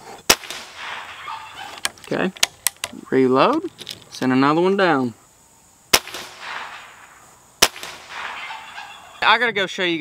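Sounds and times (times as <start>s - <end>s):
air rifle shots: 0.3s - 1.5s, 5.9s - 8.8s.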